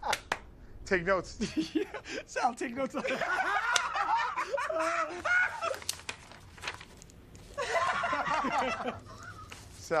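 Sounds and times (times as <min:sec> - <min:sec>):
men laughing: 0:01.4 - 0:06.0, 0:07.5 - 0:09.6.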